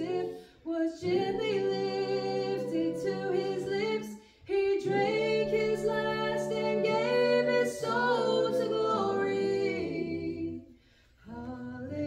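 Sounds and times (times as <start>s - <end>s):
choir singing a hymn a cappella: 0.0s - 12.0s.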